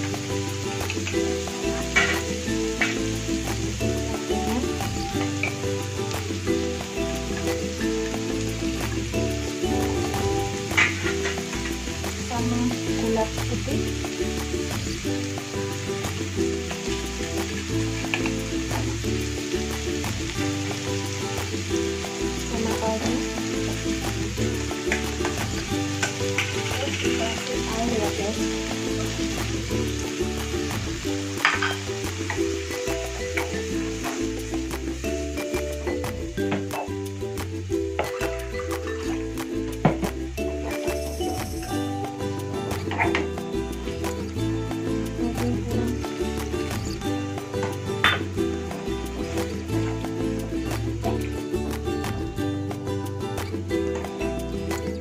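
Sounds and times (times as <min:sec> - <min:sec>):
background music: 0:00.0 - 0:55.0
vegetables sizzling in a wok: 0:00.0 - 0:55.0.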